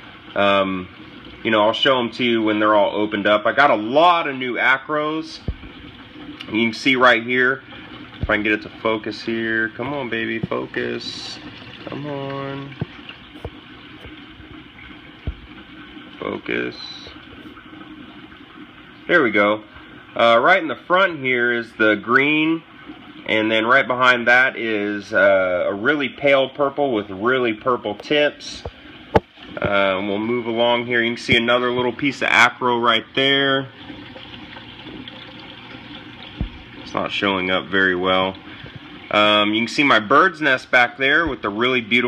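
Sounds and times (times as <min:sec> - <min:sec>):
faint pump hum: 0:00.0 - 0:42.0
water rushing: 0:00.0 - 0:42.0
short low thump: 0:15.2 - 0:15.5, 0:36.4 - 0:36.6.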